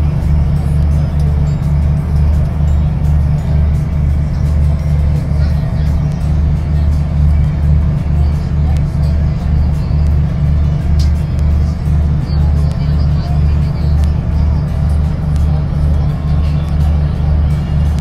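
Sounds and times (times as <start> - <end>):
ferry engine droning: 0.0 - 18.0.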